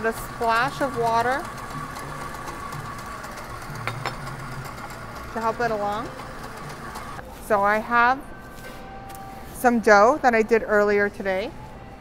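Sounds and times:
stand mixer motor hum: 0:00.0 - 0:07.2.

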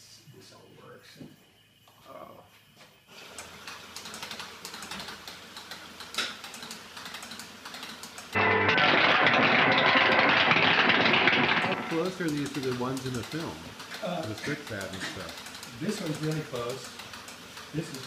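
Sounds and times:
electrical apparatus crackling and buzzing: 0:08.3 - 0:13.7.

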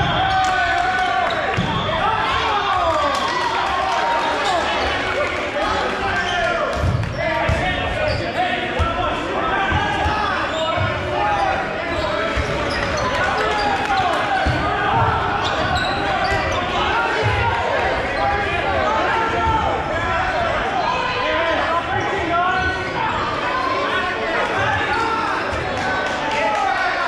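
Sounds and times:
voices echoing in hall: 0:00.0 - 0:27.0.

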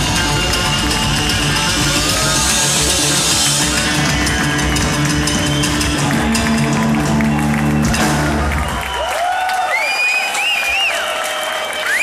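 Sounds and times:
slapped upright bass: 0:00.0 - 0:08.8
electric guitar: 0:00.0 - 0:08.9
live band playing: 0:00.0 - 0:09.2.

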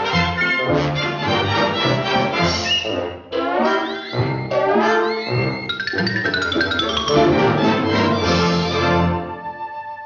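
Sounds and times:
orchestral cartoon music: 0:00.0 - 0:10.0.

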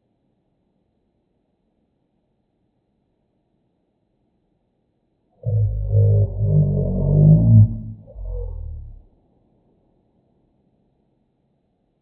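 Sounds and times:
slowed-down deep voice: 0:05.4 - 0:09.0.

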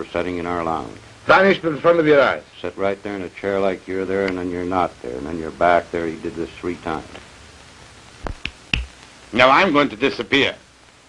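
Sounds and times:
fingers snapping: 0:08.2 - 0:09.1.

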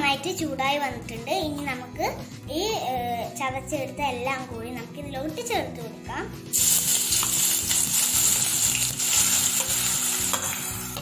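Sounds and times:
chilli sizzling in hot oil: 0:06.5 - 0:11.0.

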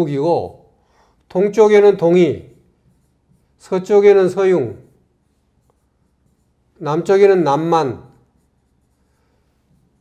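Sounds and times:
pen scratching and tapping on screen: 0:02.6 - 0:03.6, 0:08.1 - 0:10.0.

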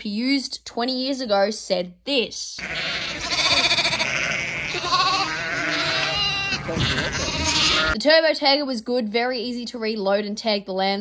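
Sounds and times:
yard background noise: 0:02.5 - 0:08.6
lambs bleating: 0:02.6 - 0:08.0.

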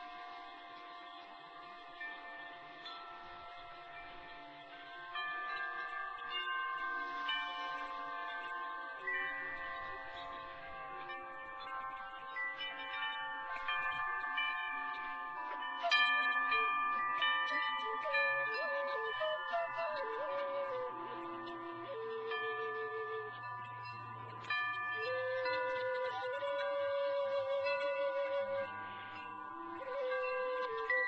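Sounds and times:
flute melody: 0:00.0 - 0:31.0
wind chimes ringing: 0:00.0 - 0:31.0.

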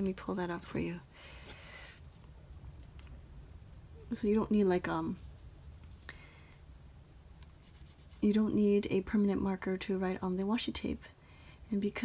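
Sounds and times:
fingers rustling tape: 0:05.0 - 0:06.1, 0:07.3 - 0:08.3.

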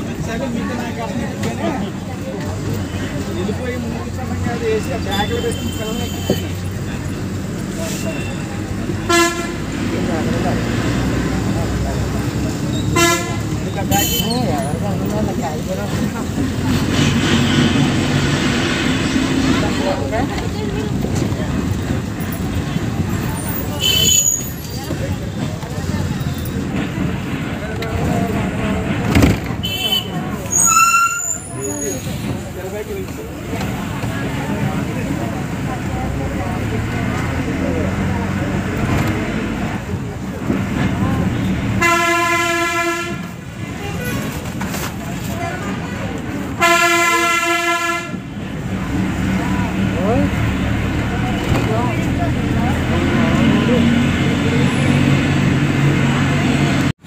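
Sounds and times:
bus engine running: 0:00.0 - 0:57.0
road noise: 0:00.0 - 0:57.0
long horn blasts: 0:09.0 - 0:09.8, 0:12.9 - 0:13.5, 0:41.8 - 0:44.2, 0:46.6 - 0:48.3.

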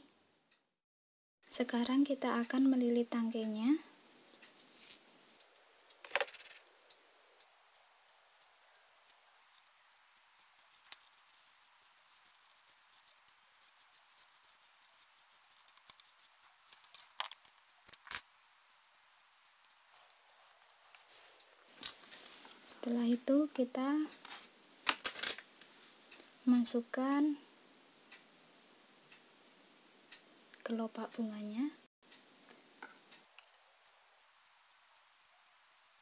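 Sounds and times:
small clicks and ticks: 0:01.4 - 0:26.4, 0:28.1 - 0:28.3, 0:30.1 - 0:31.2, 0:32.0 - 0:36.0
tape rustling: 0:08.4 - 0:18.2.

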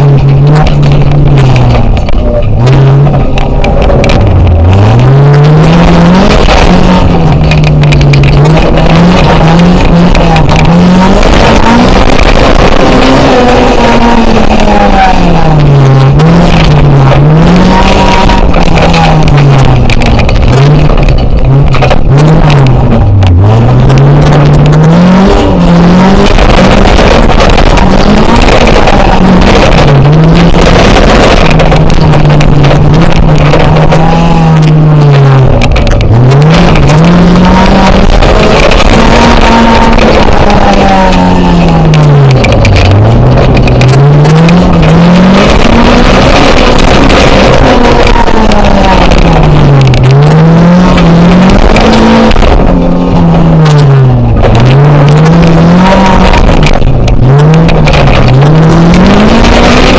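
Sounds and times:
race car engine revving: 0:00.0 - 0:59.9.

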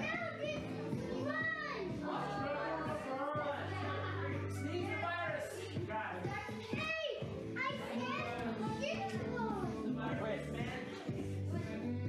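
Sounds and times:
background music with steady beat: 0:00.0 - 0:12.0.

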